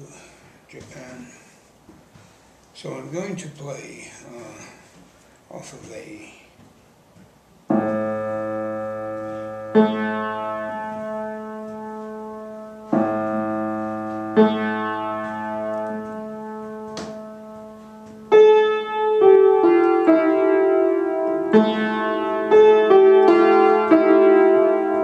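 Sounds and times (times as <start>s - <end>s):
piano chords ringing: 7.7s - 25.0s.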